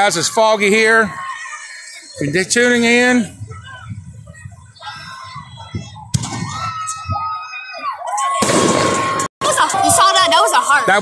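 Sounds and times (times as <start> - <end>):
fireworks bangs: 8.4 - 9.3.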